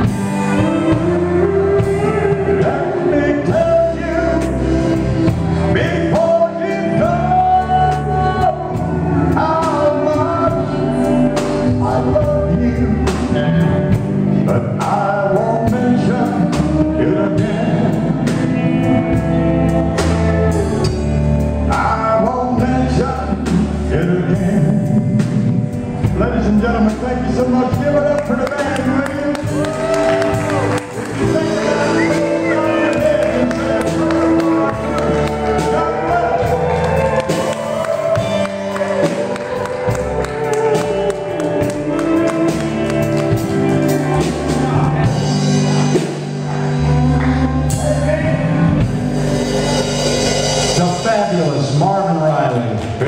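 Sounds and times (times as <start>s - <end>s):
drum kit steady beat: 0.0s - 52.4s
electric guitar: 0.0s - 53.0s
live country band playing: 0.0s - 53.0s.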